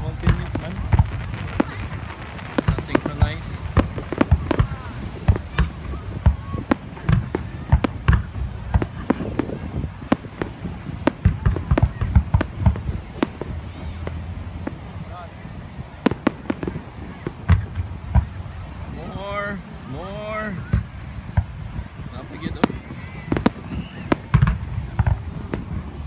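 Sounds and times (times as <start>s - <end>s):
fireworks bangs and crackles: 0.0s - 26.0s.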